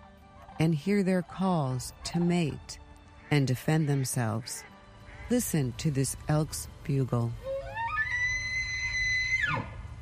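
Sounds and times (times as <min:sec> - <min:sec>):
elk bugling: 0:07.3 - 0:10.0.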